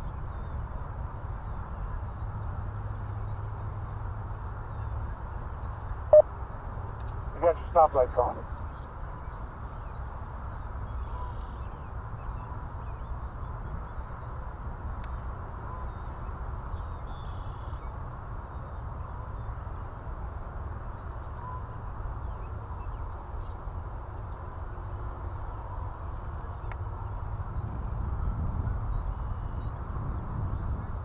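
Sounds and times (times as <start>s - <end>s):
birds chirping: 4.4s - 13.1s.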